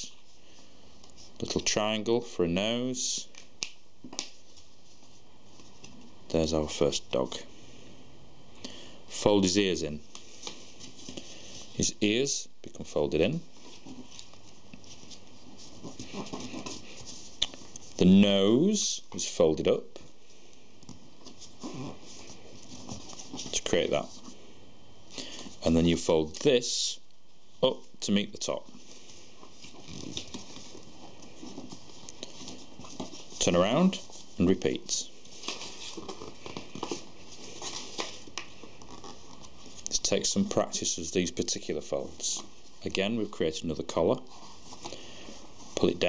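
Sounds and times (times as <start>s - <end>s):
steady background hiss: 0.0s - 46.0s
card rustling and scraping: 13.6s - 18.0s, 28.7s - 39.8s.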